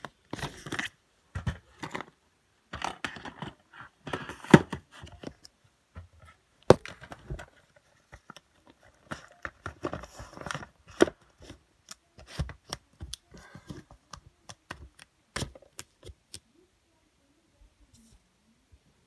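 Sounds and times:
plastic cases clacking: 6.0 - 11.6.

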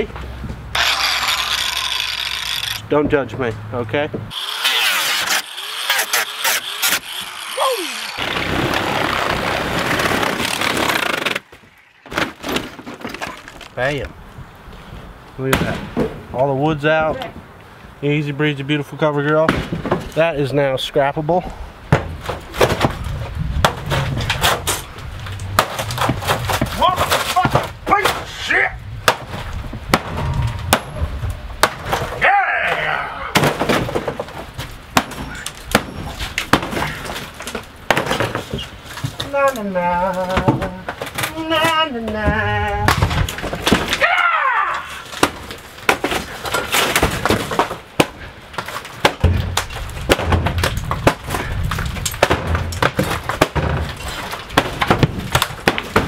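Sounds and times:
wood cracking and breaking: 4.3 - 14.0, 21.9 - 28.4, 29.0 - 56.0.

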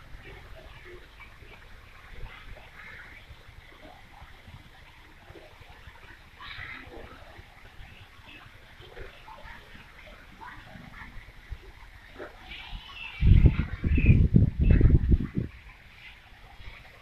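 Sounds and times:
wind buffeting microphone: 9.8 - 17.0
birds chirping: 12.4 - 14.9.

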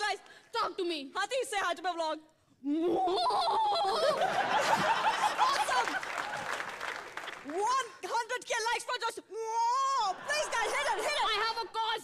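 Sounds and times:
audience laughing loudly: 3.2 - 7.0, 10.1 - 11.6.

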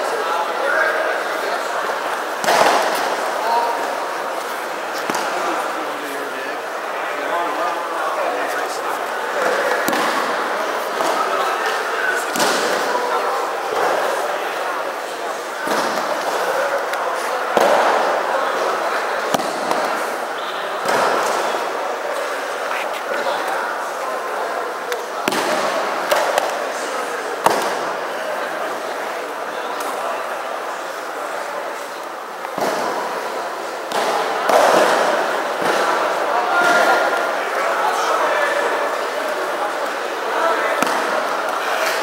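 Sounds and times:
hubbub of many voices: 0.0 - 42.0.

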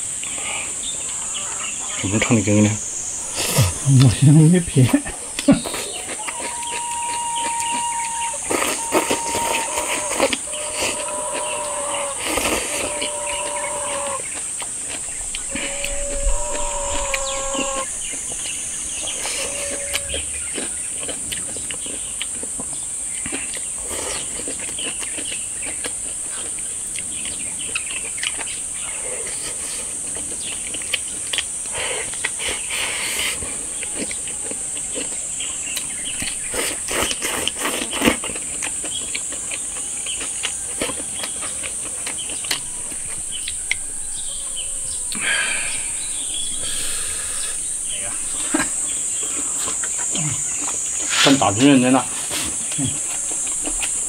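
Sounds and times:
high insect drone: 0.0 - 54.0
chewing: 2.8 - 54.0
long held notes on two pitches: 15.2 - 20.4, 42.4 - 49.3.

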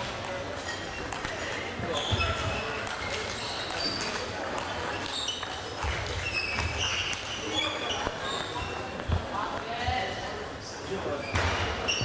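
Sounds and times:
murmur of voices in echoing hall: 0.0 - 12.0.

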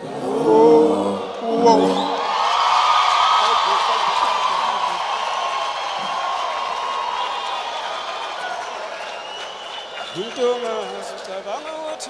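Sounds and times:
crowd cheering and clapping: 1.1 - 12.0.

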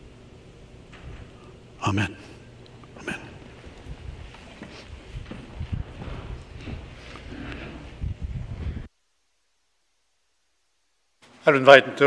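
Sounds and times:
footsteps low thumps: 3.4 - 8.9.

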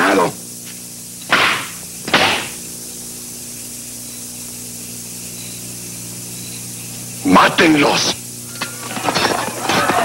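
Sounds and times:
low even hum: 0.0 - 10.0
steady hiss: 0.0 - 10.0.

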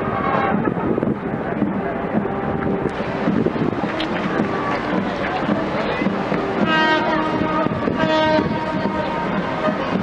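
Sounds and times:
wind: 0.0 - 10.0
ship's horn blast: 6.5 - 10.0.

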